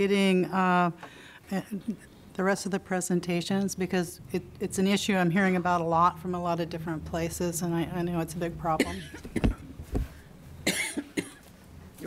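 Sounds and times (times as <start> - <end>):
person coughing: 8.8 - 9.6, 10.6 - 11.5.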